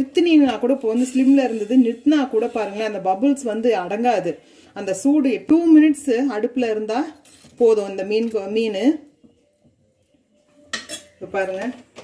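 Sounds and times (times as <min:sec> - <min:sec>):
metal ladle scraping a pot: 0:00.0 - 0:04.4, 0:07.0 - 0:08.4, 0:10.7 - 0:12.0.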